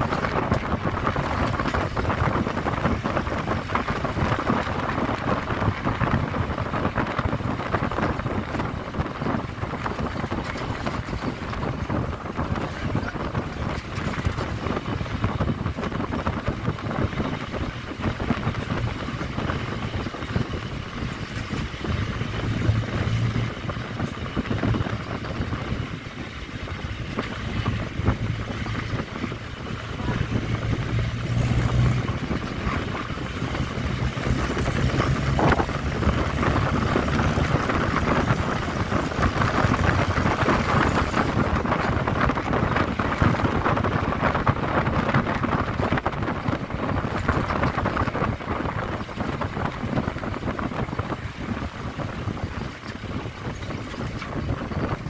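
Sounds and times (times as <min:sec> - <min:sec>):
vehicle engine and tyre noise: 0:00.0 - 0:55.0
wind buffeting microphone: 0:00.0 - 0:55.0.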